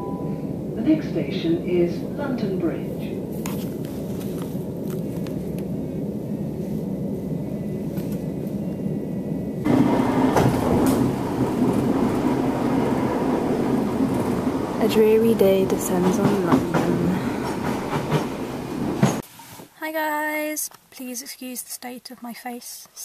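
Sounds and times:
train rumble inside carriage: 0.0s - 19.2s.

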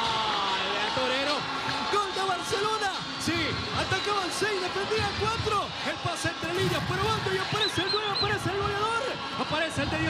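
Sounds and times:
man commentating excitedly: 0.9s - 10.0s.

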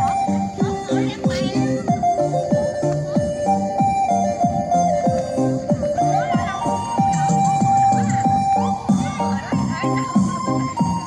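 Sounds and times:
held melody line: 0.0s - 11.0s
steady drumbeat: 0.0s - 11.0s
stepping bass notes: 0.0s - 11.0s.

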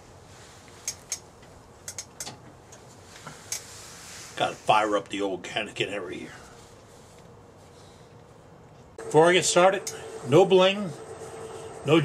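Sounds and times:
light clicks and taps of metal parts: 0.7s - 3.7s
faint steady hiss: 2.7s - 12.0s.

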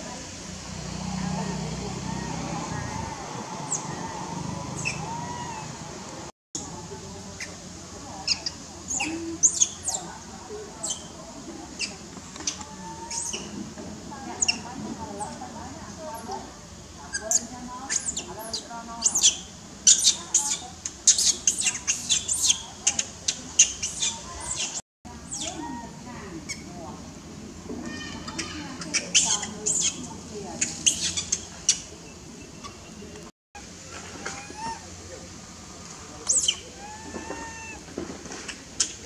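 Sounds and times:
baby monkey squeaky calls: 2.1s - 5.8s, 8.2s - 10.1s, 10.8s - 11.2s, 11.8s - 13.6s, 14.4s - 15.4s, 17.1s - 25.8s, 27.9s - 31.9s, 34.2s - 34.8s, 36.2s - 37.8s.

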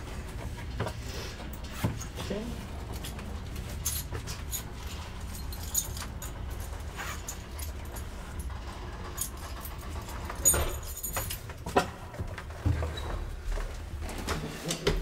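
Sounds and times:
elevator car running in shaft: 0.0s - 14.8s.

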